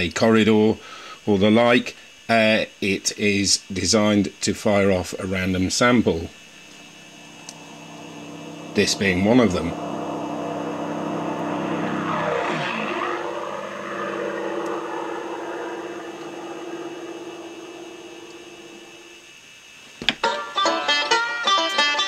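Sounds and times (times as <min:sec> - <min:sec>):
steady hum: 0:04.6 - 0:20.0
engine-like drone sweeping past: 0:06.0 - 0:19.4.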